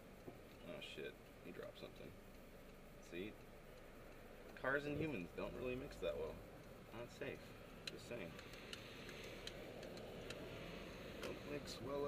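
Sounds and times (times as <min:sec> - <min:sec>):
engine and road noise hum: 0:00.0 - 0:12.0
turn signal clicking: 0:01.2 - 0:12.0.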